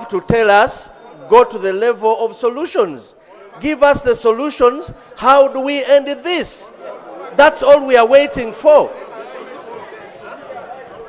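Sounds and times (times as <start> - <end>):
murmur of many voices: 0.0 - 11.0.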